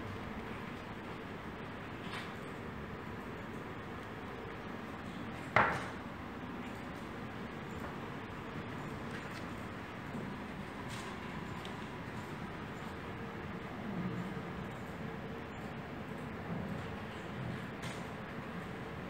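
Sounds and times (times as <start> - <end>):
indoor room noise: 0.0 - 19.0.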